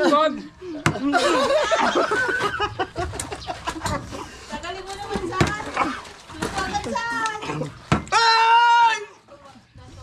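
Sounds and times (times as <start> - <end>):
man yelling: 8.1 - 9.1.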